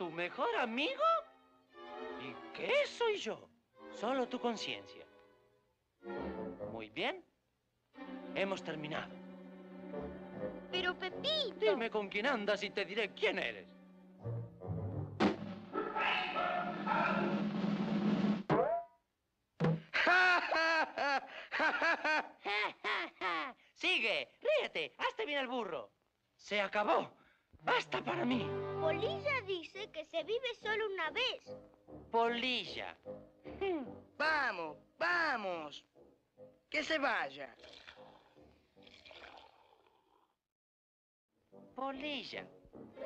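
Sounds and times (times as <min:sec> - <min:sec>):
orchestral cartoon music: 0:00.0 - 0:07.2, 0:08.0 - 0:18.4, 0:27.6 - 0:36.1, 0:41.4 - 0:43.0
boy cackling laughter: 0:19.9 - 0:23.6
cartoon beer gurgling: 0:37.5 - 0:40.3.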